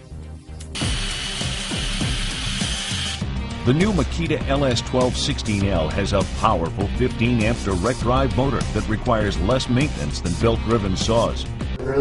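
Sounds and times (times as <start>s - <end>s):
background music: 0.0s - 12.0s
miter saw whining: 0.8s - 3.2s.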